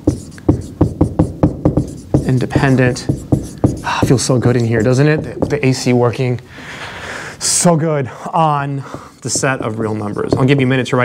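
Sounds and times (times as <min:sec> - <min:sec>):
marker writing on whiteboard: 0:00.0 - 0:06.0, 0:08.8 - 0:11.0.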